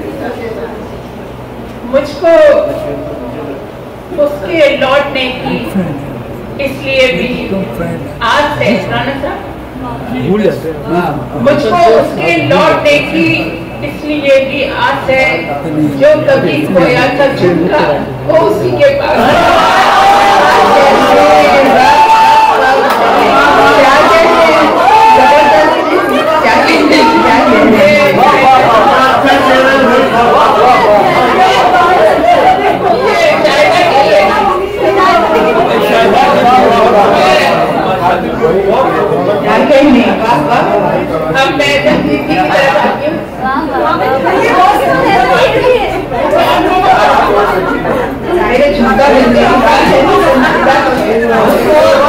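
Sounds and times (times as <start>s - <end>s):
audience chatter: 0.0s - 52.0s.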